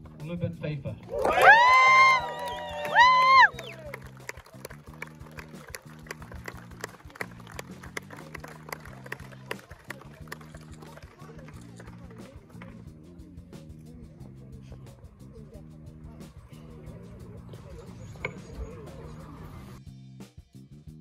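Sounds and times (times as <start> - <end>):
small crowd clapping: 1.0 - 12.9
loud pitched cheering whoops: 1.1 - 4.0
music from a loudspeaker: 1.7 - 20.4.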